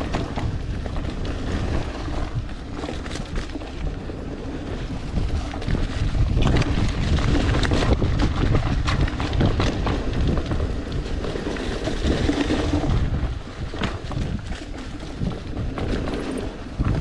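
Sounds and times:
bike tyres rumbling on dirt: 0.0s - 17.0s
wind on microphone: 0.0s - 17.0s.

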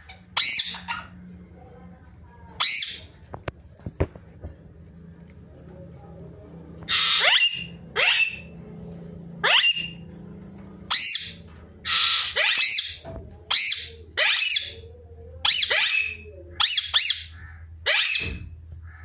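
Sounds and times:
parakeet squawking: 0.0s - 1.3s, 2.6s - 3.2s, 6.8s - 8.6s, 9.4s - 10.1s, 10.8s - 18.4s
low steady hum: 0.0s - 19.0s.

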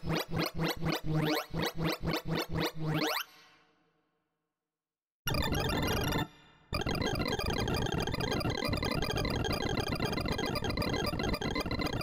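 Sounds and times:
synthesized beeps rising in pitch: 5.3s - 12.0s.

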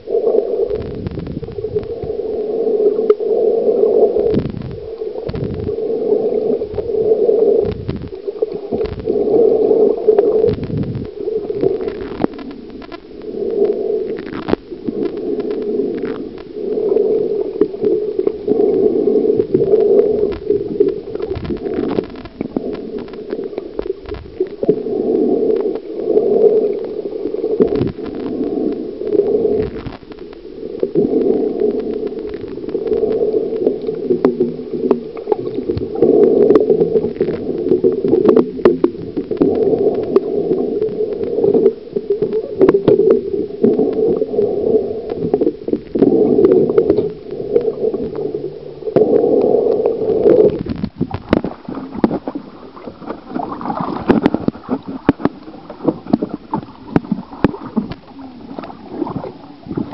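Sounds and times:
muffled underwater churning: 0.0s - 59.9s
muffled water sloshing and bubbling: 0.0s - 59.9s.

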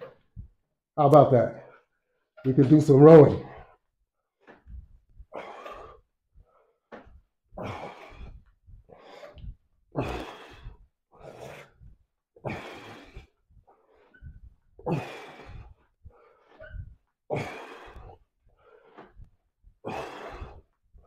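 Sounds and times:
man breathing hard: 7.5s - 21.0s.

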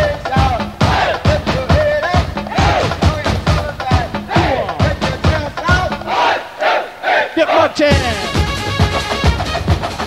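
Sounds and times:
hardcore rave music: 0.0s - 10.0s
shouted vocal bursts: 2.5s - 3.1s, 4.2s - 8.4s.

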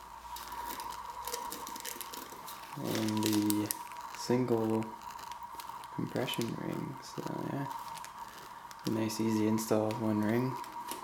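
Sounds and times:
packaging rustling: 0.0s - 11.0s.

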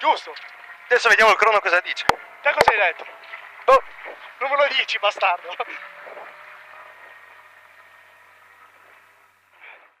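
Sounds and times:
car engine running at low revs: 0.0s - 10.0s.

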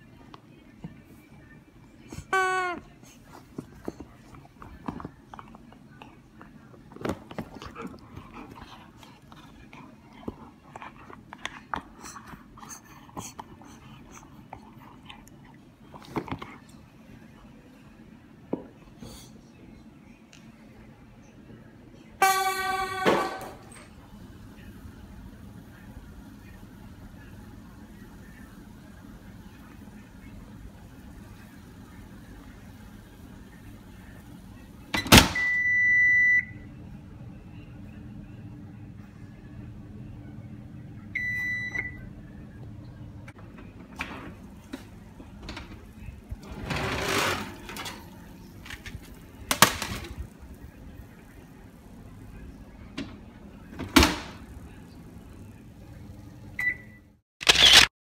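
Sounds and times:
low steady hum: 0.0s - 57.2s
oven control panel beeps: 35.0s - 36.6s, 41.2s - 42.1s, 56.6s - 57.1s.

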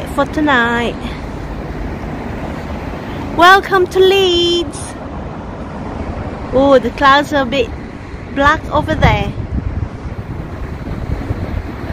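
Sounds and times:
city background rumble: 0.0s - 11.9s.

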